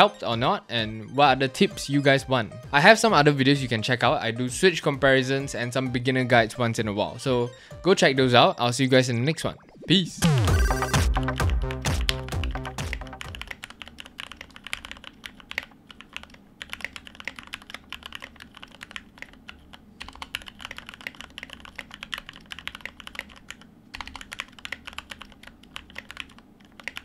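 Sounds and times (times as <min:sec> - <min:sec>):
keyboard keystrokes: 0:11.9 - 0:27.0.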